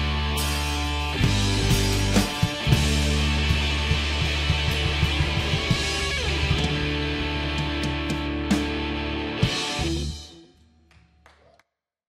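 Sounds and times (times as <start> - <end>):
drum kit: 0.0 - 10.5
electric guitar: 0.0 - 10.6
bass guitar: 0.0 - 10.9.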